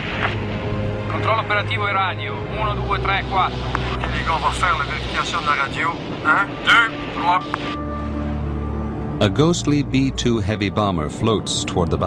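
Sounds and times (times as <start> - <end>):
aircraft rumble in flight: 0.0 - 12.0
man talking over radio: 1.1 - 7.7.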